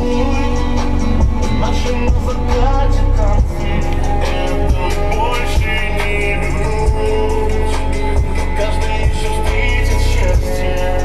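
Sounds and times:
pop song with heavy bass: 0.0 - 11.0.

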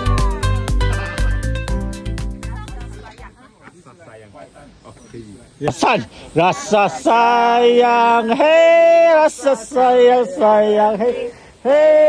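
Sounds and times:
people talking quietly: 2.4 - 12.0.

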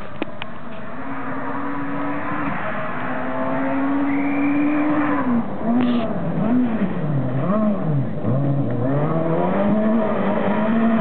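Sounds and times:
rally car engine at high revs: 0.6 - 11.0.

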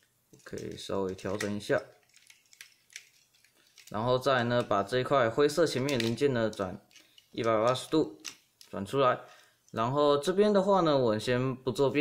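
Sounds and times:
plastic toy parts being handled: 0.0 - 4.9, 5.6 - 9.8.

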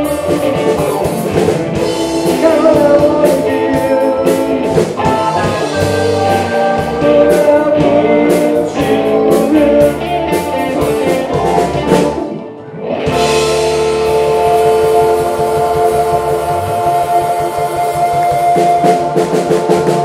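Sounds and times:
blues-rock band playing: 0.0 - 20.0.

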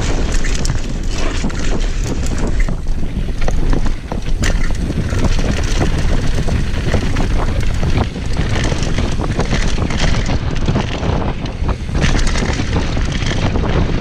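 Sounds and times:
bike chain and frame rattling: 0.0 - 14.0
tyres rumbling on dirt: 0.0 - 14.0
wind buffeting microphone: 0.0 - 14.0.

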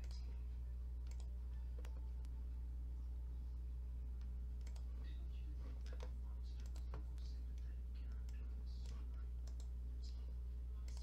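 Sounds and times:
computer mouse clicks: 0.0 - 0.2, 1.0 - 2.0, 4.2 - 4.9, 5.8 - 9.7
steady low hum: 0.0 - 11.0.

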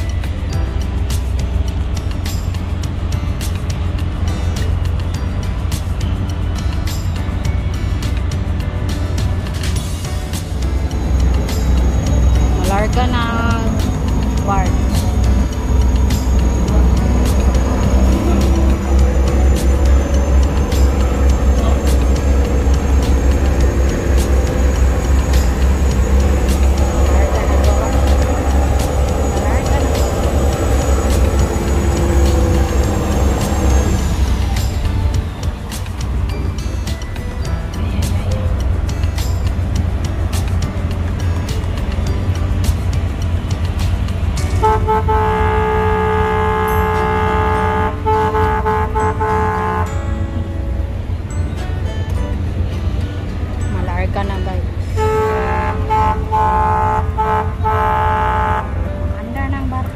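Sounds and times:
ship engines rumbling: 0.0 - 59.9
ship's horn blast: 11.9 - 35.1, 44.5 - 50.5, 54.8 - 59.2.

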